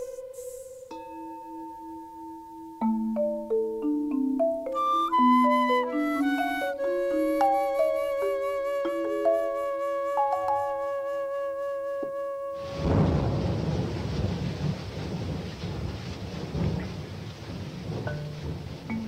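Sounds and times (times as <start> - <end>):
flute long wavering note: 0.0 - 2.4, 4.8 - 13.2
ringing mallet percussion: 0.0 - 10.8
rumbling hissing percussion wash: 0.0 - 11.0, 12.6 - 19.0.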